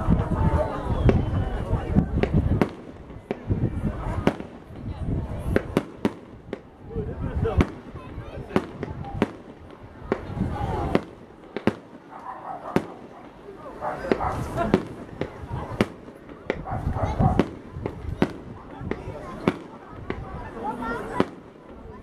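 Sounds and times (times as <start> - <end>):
fireworks bursting: 0.0 - 22.0.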